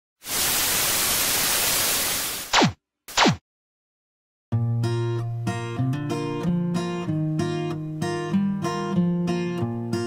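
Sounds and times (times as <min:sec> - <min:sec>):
television static hiss: 0:00.3 - 0:02.5.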